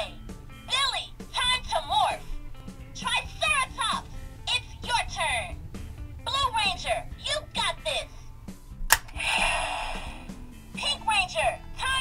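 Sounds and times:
toy snapping open click: 8.9 - 9.2.

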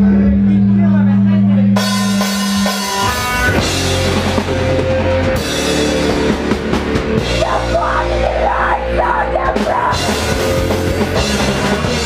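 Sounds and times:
distorted electric guitars: 0.0 - 12.0
drum kit: 1.8 - 12.0.

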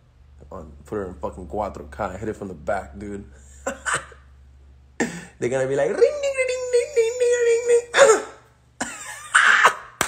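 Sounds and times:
man laughing: 3.4 - 4.3, 8.8 - 10.0.

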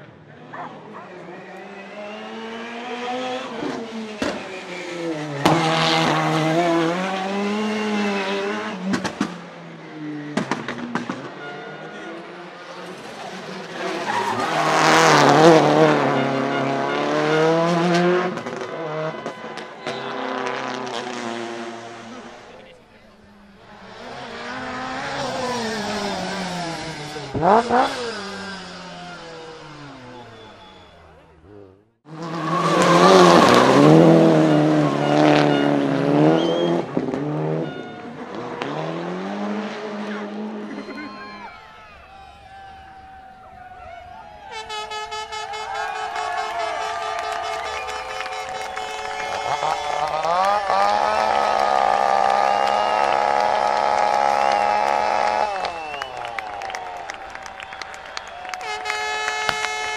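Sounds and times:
rally car engines revving: 0.0 - 41.6, 44.6 - 59.9.

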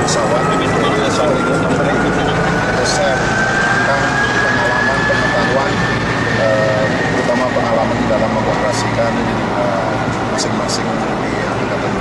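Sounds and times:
faint voices: 0.0 - 12.0
turbine engine whine: 0.0 - 12.0.

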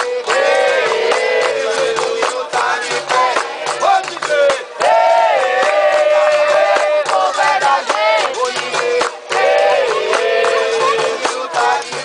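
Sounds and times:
chorus singing held notes: 0.0 - 12.0
hand clapping: 0.0 - 12.0.

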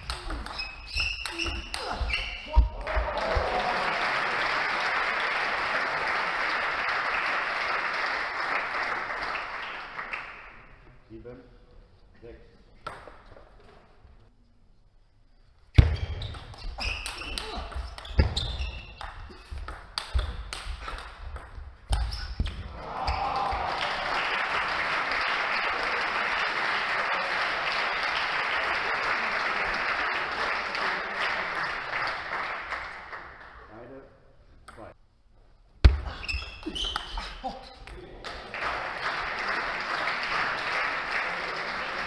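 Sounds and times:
shoe soles squeaking: 0.0 - 2.7, 15.7 - 20.4, 21.9 - 23.2, 36.0 - 37.9.

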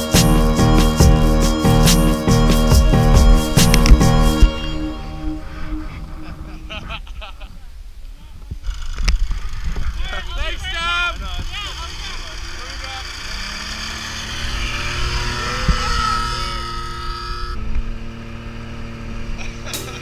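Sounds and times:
snowmobile engine running: 0.0 - 7.4, 8.7 - 20.0.

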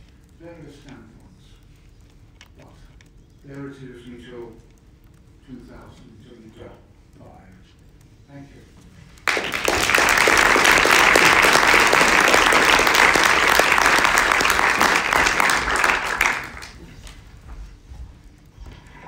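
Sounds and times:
audience applauding: 9.2 - 17.3.

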